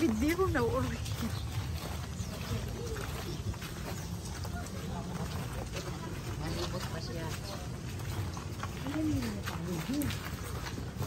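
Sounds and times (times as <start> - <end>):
faint voices: 0.0 - 11.0
footsteps on gravel: 0.0 - 11.0.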